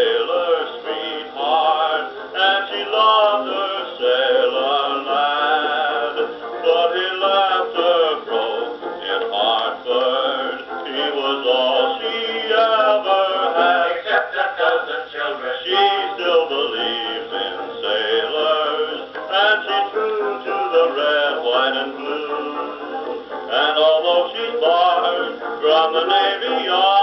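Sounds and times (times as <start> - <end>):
dance orchestra on old record: 0.0 - 27.0.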